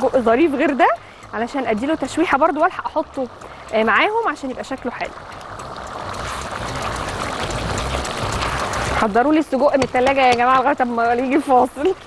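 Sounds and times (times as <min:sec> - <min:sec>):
water boiling and bubbling: 0:00.0 - 0:12.0.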